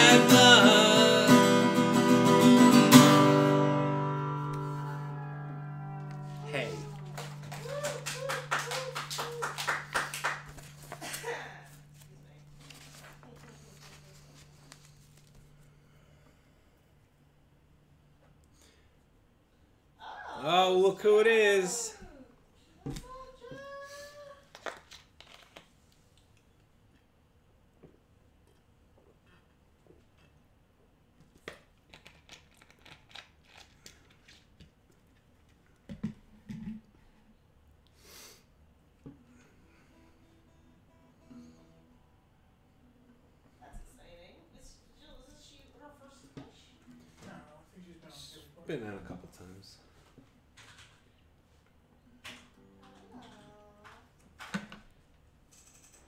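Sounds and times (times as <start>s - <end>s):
paper sheets rustling: 12.6s - 15.5s.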